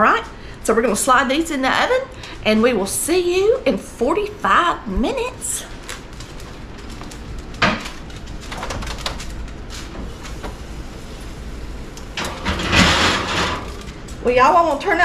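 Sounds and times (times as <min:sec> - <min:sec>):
oven door shutting: 0:12.0 - 0:14.0
oven rack sliding scrape: 0:12.2 - 0:14.0.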